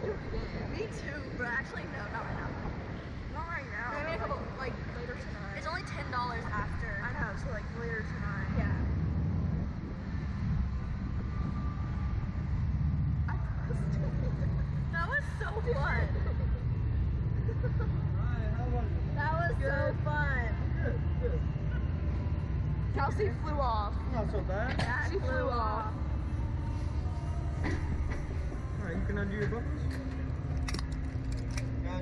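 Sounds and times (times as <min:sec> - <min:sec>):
wind buffeting microphone: 0:00.0 - 0:17.5
steady low hum: 0:00.0 - 0:32.0
seat buckles clicking: 0:30.6 - 0:31.7.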